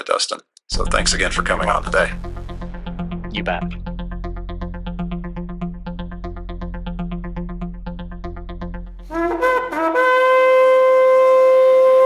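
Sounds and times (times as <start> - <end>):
shofar long held note: 9.0 - 12.0.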